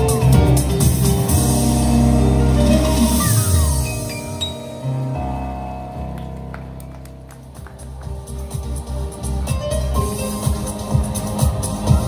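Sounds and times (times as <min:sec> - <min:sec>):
stage keyboard music: 0:00.0 - 0:12.0.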